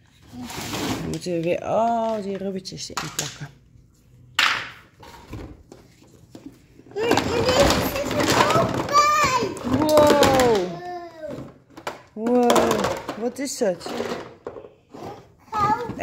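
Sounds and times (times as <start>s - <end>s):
toddler excited vocal sounds: 7.0s - 11.5s
plastic toy pieces clattering: 7.0s - 14.7s.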